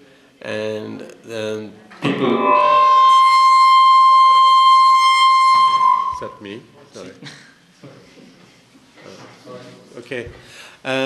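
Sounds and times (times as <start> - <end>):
microphone feedback howl: 2.1 - 6.4.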